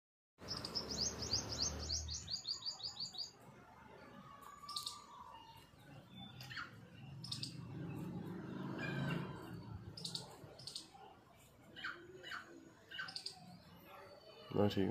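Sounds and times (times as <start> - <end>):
small bird chirping: 0.4 - 3.4, 4.5 - 11.1, 11.7 - 14.6.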